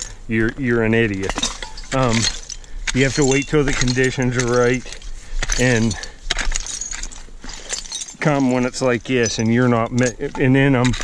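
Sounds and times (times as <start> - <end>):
rake clinking through glassy soil: 1.0 - 11.0.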